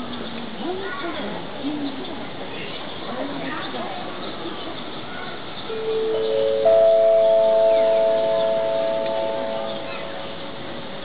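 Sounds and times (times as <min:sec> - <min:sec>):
public-address chime: 0:05.7 - 0:10.6.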